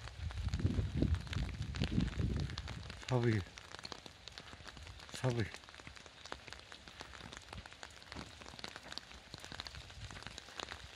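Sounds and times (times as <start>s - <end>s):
light rain hiss: 0.0s - 10.9s
raindrops ticking on surfaces: 0.0s - 10.9s.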